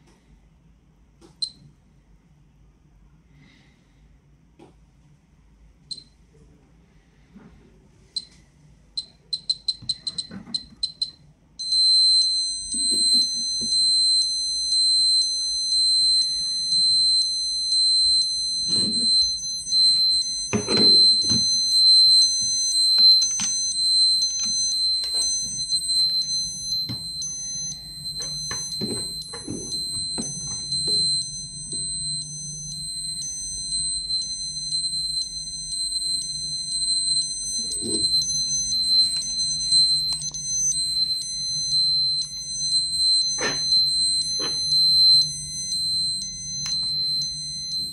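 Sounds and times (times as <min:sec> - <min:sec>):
dosimeter beeping: 0:01.4 - 0:01.6, 0:05.9 - 0:06.2, 0:09.0 - 0:47.9
continuous alarm tone: 0:09.0 - 0:47.9.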